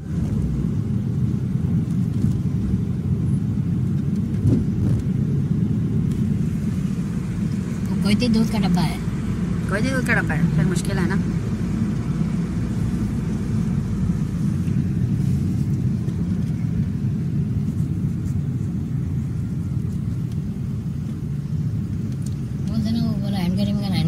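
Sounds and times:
car engine and road noise: 0:00.0 - 0:24.0.

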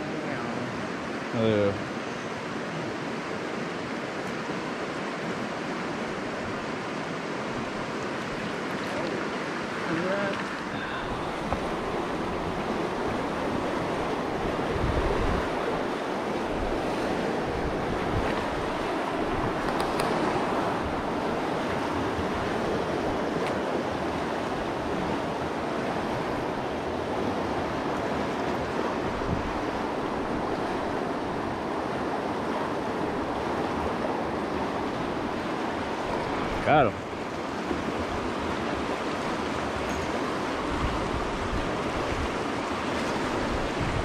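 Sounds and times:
river water rushing over rocks: 0:00.0 - 0:44.0.

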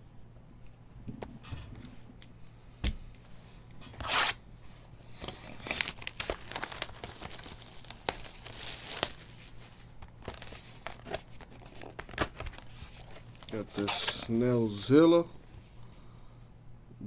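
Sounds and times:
cardboard tearing: 0:04.0 - 0:04.4, 0:05.6 - 0:09.4
wrapper crinkling: 0:05.2 - 0:14.4.

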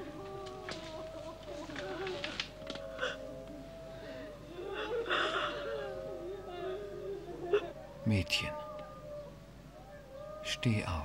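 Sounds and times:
mourners wailing: 0:00.0 - 0:11.0.

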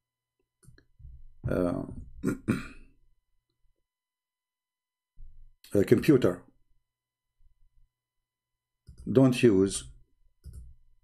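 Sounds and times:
man clearing his throat: 0:02.2 - 0:02.9.

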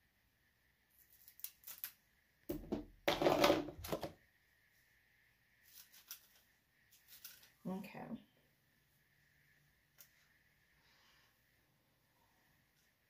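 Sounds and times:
comb rustling through hair: 0:05.6 - 0:07.7.

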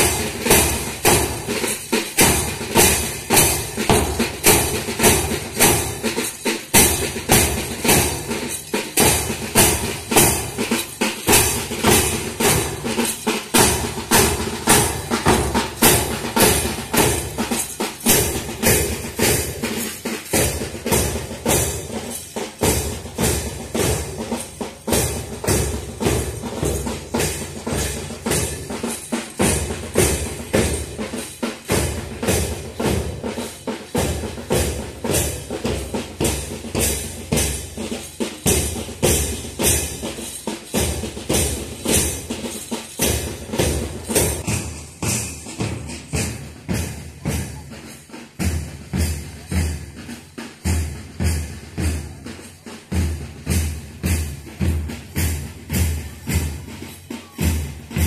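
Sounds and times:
drums beating march cadence: 0:00.0 - 0:58.0.

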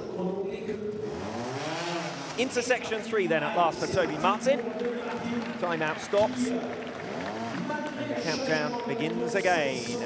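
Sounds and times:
motorcycle engine revving: 0:01.0 - 0:03.1, 0:06.7 - 0:08.0.

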